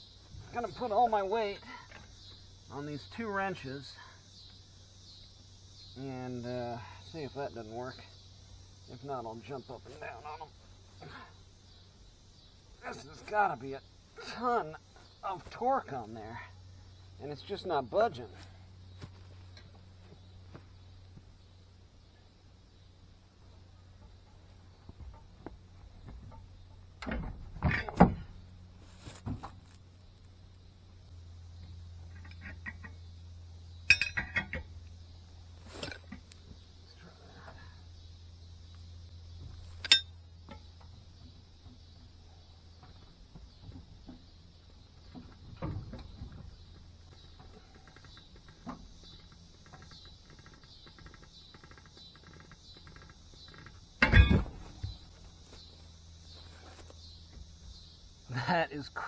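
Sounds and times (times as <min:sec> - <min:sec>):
high insect drone: 0:00.0 - 0:59.0
steady low hum: 0:00.0 - 0:59.0
wrenches clanking on lug nut: 0:33.9 - 0:34.7.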